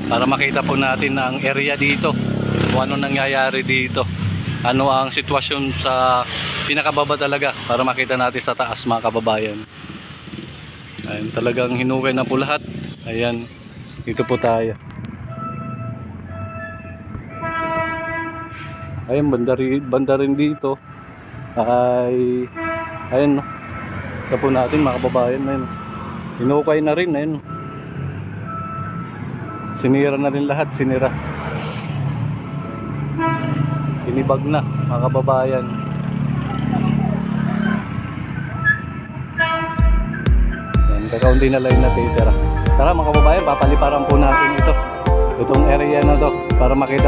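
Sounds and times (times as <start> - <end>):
low street noise: 0.0 - 47.0
horn sounding long tones: 14.2 - 19.0, 39.4 - 47.0
music with heavy bass beat: 39.8 - 47.0.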